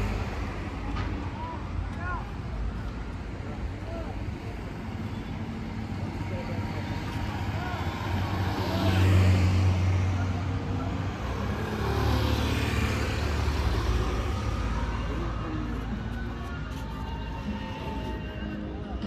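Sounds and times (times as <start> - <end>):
faint voices of passersby: 0.0 - 19.0
vehicles passing by: 0.0 - 19.0.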